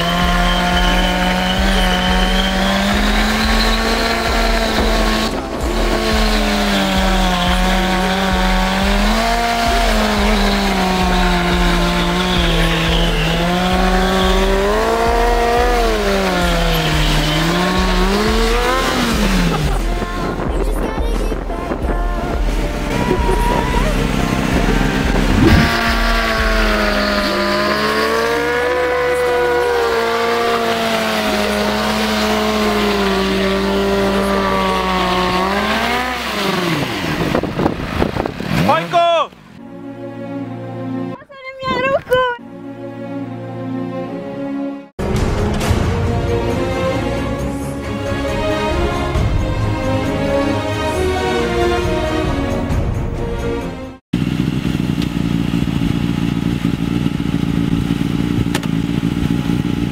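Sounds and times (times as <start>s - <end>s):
tyre squealing: 0.0s - 19.8s, 22.8s - 39.4s
motorcycle engine at high revs: 0.0s - 20.5s, 21.3s - 39.6s, 54.1s - 59.9s.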